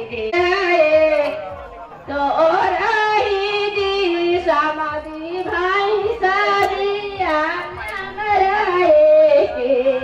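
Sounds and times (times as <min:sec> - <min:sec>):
woman singing folk song: 0:00.0 - 0:01.4, 0:02.0 - 0:10.0.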